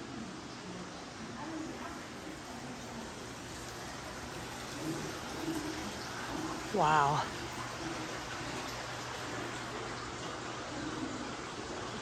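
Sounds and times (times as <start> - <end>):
faint distant voices: 0.0 - 12.0.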